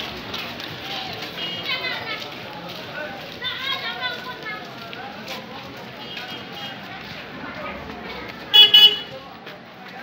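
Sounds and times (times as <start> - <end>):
murmur of voices: 0.0 - 10.0
car horn double toot: 8.6 - 9.1.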